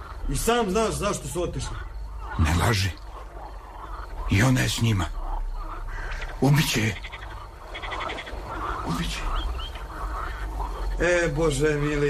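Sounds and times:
frogs croaking: 0.0s - 12.0s
man speaking: 0.3s - 3.0s, 4.3s - 5.2s, 6.4s - 7.0s, 11.0s - 12.0s.

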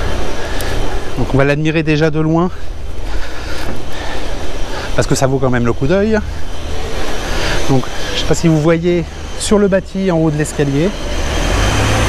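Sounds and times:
even hiss: 0.0s - 12.0s
low rumble: 0.0s - 12.0s.

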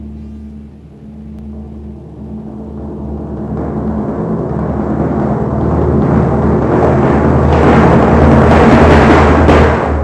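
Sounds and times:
deep timpani note ringing: 0.0s - 10.0s.

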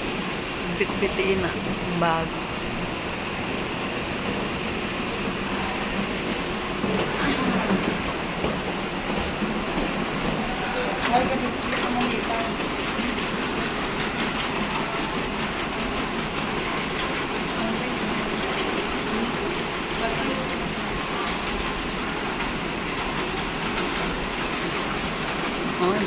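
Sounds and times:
moving walkway rumble and hiss: 0.0s - 26.0s.

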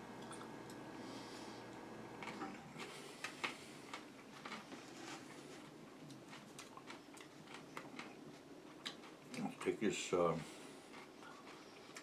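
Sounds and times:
clicks of person eating: 5.6s - 9.7s, 10.9s - 12.0s.

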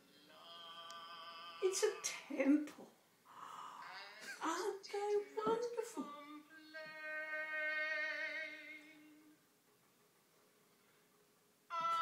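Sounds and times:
opera through small speaker: 0.0s - 9.5s, 11.7s - 12.0s.

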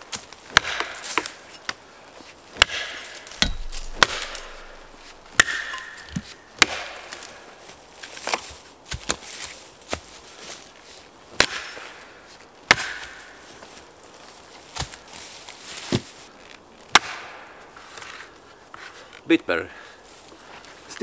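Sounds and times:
axe chopping log: 0.5s - 1.4s, 2.6s - 7.2s, 11.4s - 11.8s, 12.7s - 13.3s, 16.9s - 17.4s.

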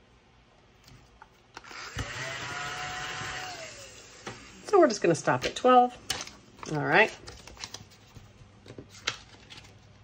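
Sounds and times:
small motor whirring: 1.6s - 4.7s.

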